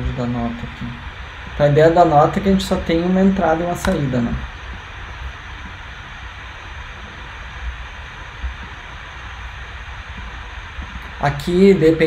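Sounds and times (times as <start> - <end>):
low rumble: 0.0 - 12.0
steady background hiss: 0.0 - 12.0.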